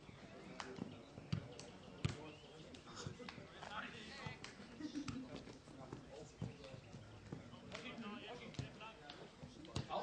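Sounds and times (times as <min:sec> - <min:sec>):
football being kicked: 0:01.2 - 0:02.3, 0:09.7 - 0:10.0.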